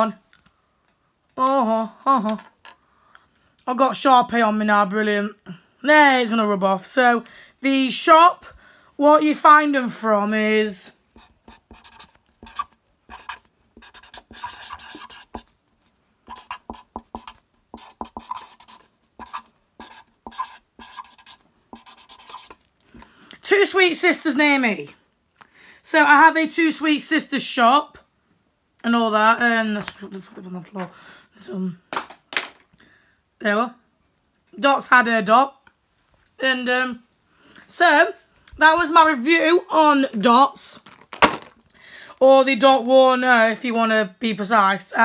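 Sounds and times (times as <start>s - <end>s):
marker writing on paper: 11.2s - 15.5s, 16.3s - 22.6s.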